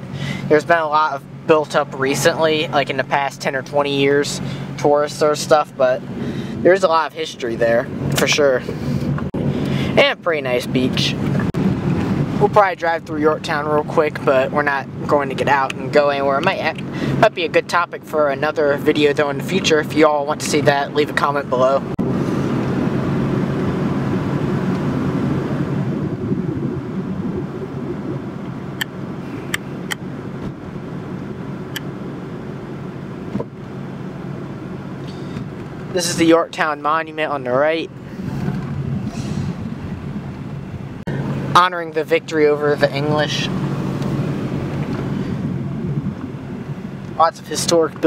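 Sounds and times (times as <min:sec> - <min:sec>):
car driving heard from inside: 0:00.0 - 0:48.0
road rumble: 0:00.0 - 0:48.0.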